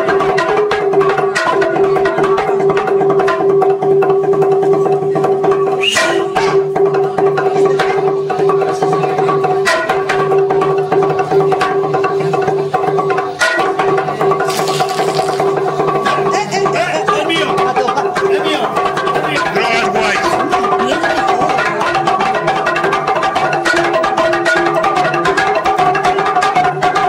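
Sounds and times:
wooden planks struck with sticks: 0:14.4 - 0:15.6.

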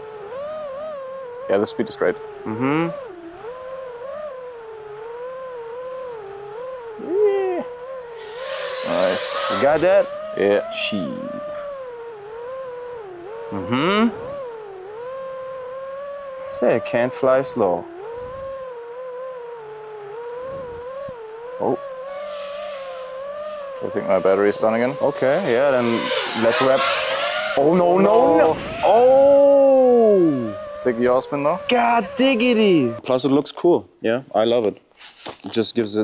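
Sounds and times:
electric motor and propeller whine: 0:00.0 - 0:33.0.

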